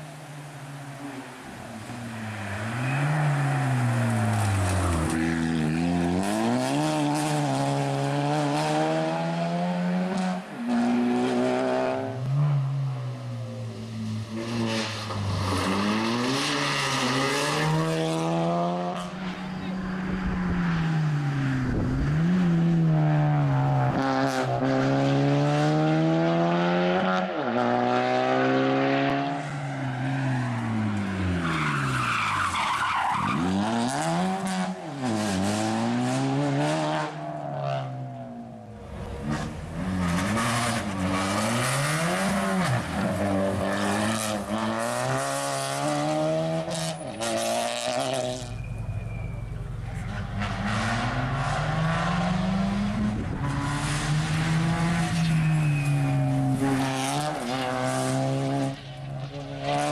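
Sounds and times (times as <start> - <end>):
rally car engine revving: 1.0 - 12.7, 13.4 - 59.9.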